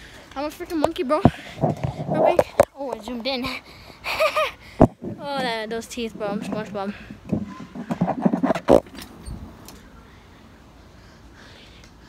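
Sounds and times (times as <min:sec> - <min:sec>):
phone microphone jostling: 0:01.2 - 0:03.1, 0:04.8 - 0:05.6, 0:06.2 - 0:09.5.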